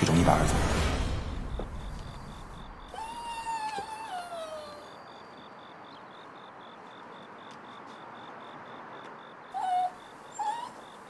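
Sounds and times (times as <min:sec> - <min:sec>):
crickets chirping: 0:00.3 - 0:11.0.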